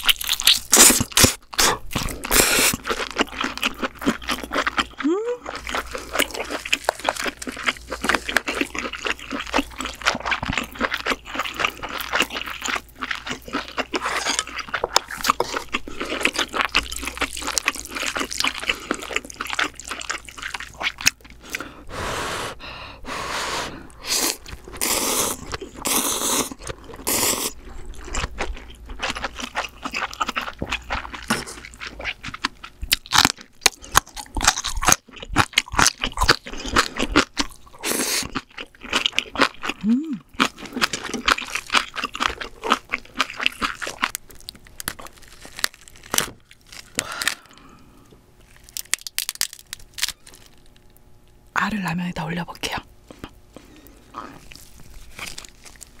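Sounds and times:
crunchy chewing: 0.0 - 21.7, 23.9 - 51.1, 53.0 - 56.0
noodle slurping: 21.5 - 27.6.

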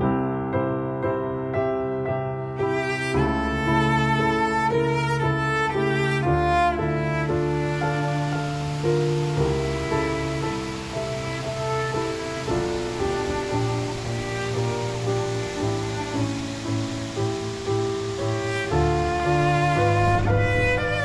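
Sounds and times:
slow instrumental music: 0.0 - 21.0
falling water rushing: 2.6 - 21.0.

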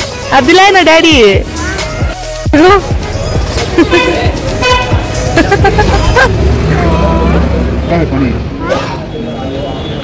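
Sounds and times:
vehicle engine rumbling: 0.0 - 10.0
voices talking: 0.0 - 10.0.

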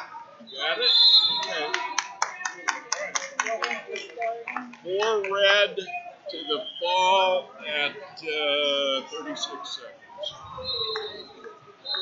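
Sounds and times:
voices calling out: 0.0 - 12.0
rapid hand clapping: 1.4 - 5.4.

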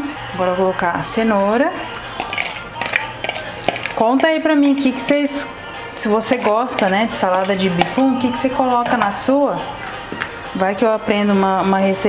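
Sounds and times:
fork scraping and knocking bowls: 2.2 - 5.2, 6.0 - 9.4.

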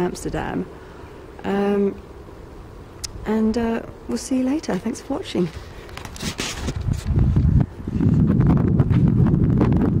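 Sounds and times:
wind buffeting microphone: 4.8 - 10.0.

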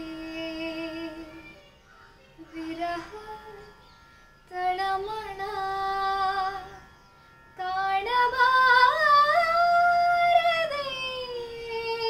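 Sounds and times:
woman singing: 0.0 - 7.0, 7.6 - 12.0.

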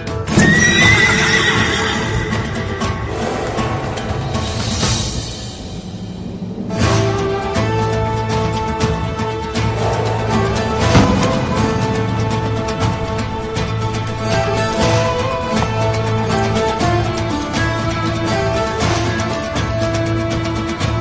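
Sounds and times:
dramatic ringtone music: 0.2 - 5.7, 6.7 - 19.8
loud percussive hit: 9.7 - 14.0.

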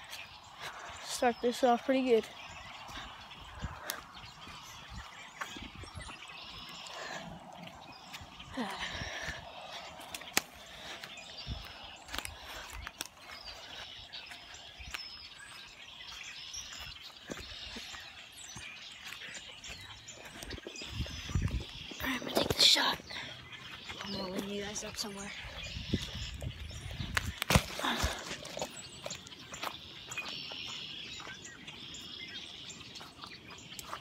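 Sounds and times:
wind noise: 0.0 - 13.0, 19.8 - 23.3, 23.9 - 28.7.

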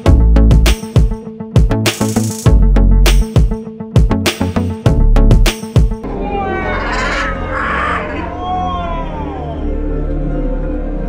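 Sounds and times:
harsh bird screech: 6.2 - 8.5
macaws squawking: 6.2 - 8.5.

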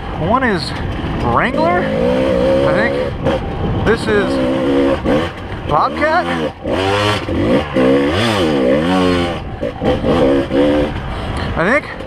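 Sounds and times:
dirt bike engine revving: 1.0 - 12.0.

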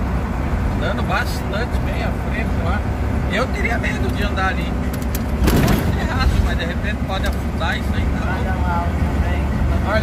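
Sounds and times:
truck engine and road drone: 0.0 - 10.0.

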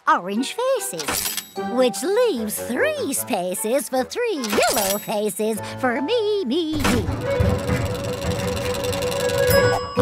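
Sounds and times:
toy machine whirring rumble: 6.8 - 9.7.

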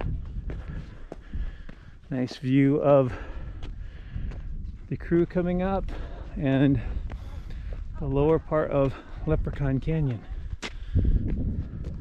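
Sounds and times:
footsteps on rock: 0.0 - 12.0.

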